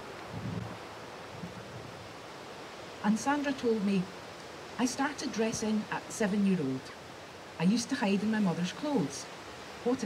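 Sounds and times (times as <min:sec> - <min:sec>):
wind hiss on microphone: 0:00.0 - 0:10.0.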